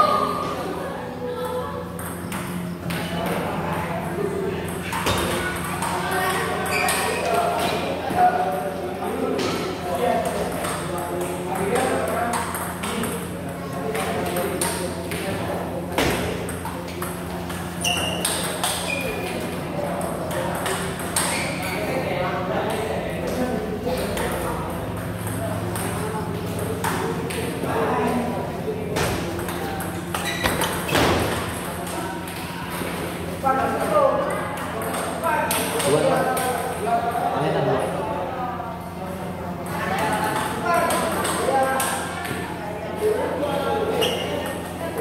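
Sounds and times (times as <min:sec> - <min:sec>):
ball bouncing on table: 0:04.7 - 0:07.9, 0:16.0 - 0:19.4, 0:25.2 - 0:27.5.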